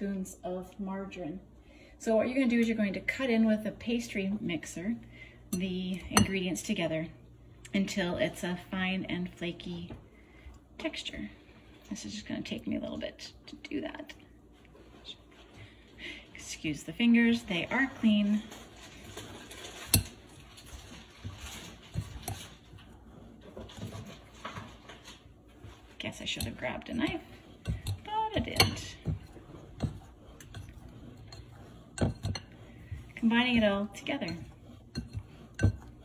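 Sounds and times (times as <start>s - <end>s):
pastry blender scraping in glass bowl: 25.6s - 36.0s.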